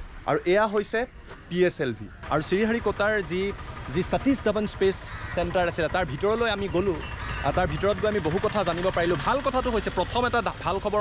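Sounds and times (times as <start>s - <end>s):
low steady rumble: 0.0s - 11.0s
man talking: 0.2s - 11.0s.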